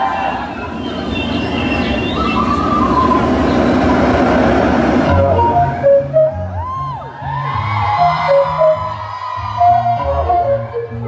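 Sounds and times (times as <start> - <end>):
high screams: 0.0 - 3.9, 6.5 - 10.1
crowd cheering and screaming: 0.0 - 11.0.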